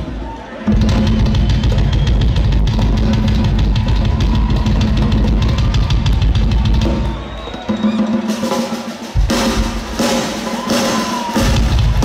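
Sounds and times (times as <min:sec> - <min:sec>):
rock drum solo: 0:00.6 - 0:12.0.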